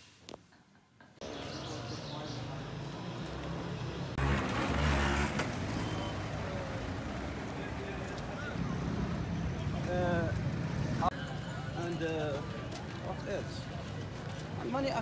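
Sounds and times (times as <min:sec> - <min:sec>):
passing cars and motorbikes: 0:01.2 - 0:15.0.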